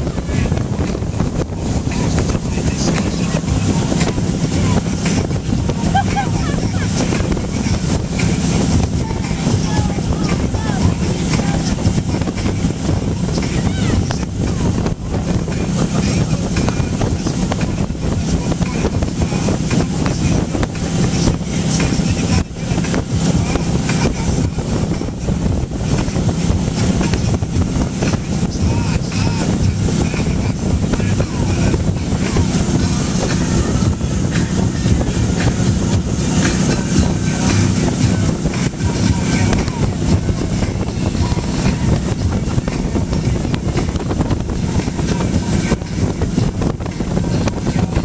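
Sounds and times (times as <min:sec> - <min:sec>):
boat engine running: 0:00.0 - 0:48.0
rush of churning wake: 0:00.0 - 0:48.0
wind buffeting microphone: 0:00.0 - 0:48.0.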